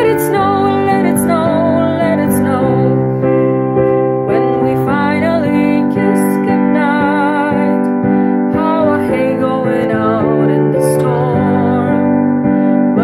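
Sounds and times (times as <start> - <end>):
woman singing with vibrato: 0.0 - 3.3, 4.3 - 13.0
sustained piano chords: 0.0 - 13.0.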